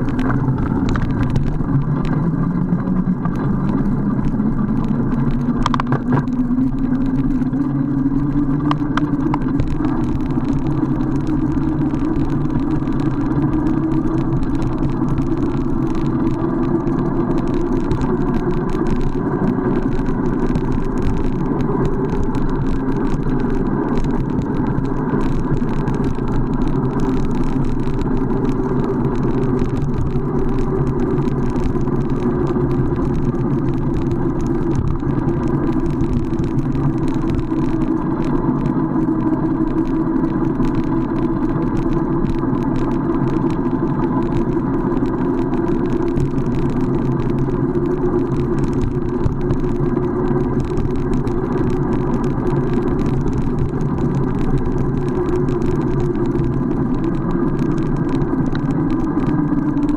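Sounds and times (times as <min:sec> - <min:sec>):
bike tyres humming on asphalt: 0:00.0 - 0:59.9
wind on microphone: 0:00.0 - 0:59.9.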